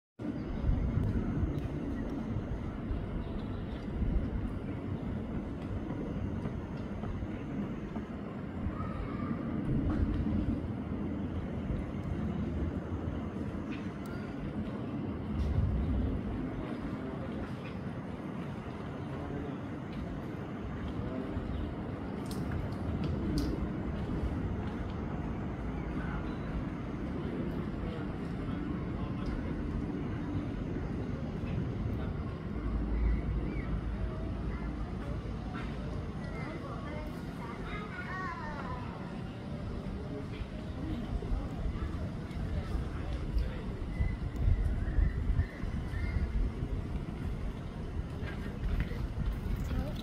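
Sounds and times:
low rumbling background noise: 0.2 - 50.0
faint clicks: 22.2 - 23.7.

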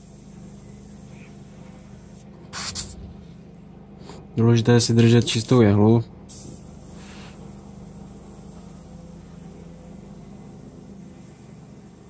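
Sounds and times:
airbrush hiss of air: 0.0 - 3.1, 6.3 - 12.0
steady low hum: 0.0 - 12.0.

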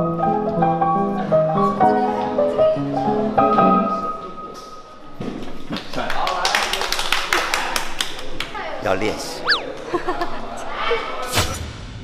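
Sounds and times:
people clapping: 5.7 - 8.6.

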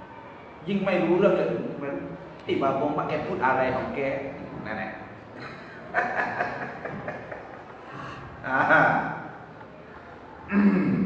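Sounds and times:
laughter: 5.4 - 7.8.

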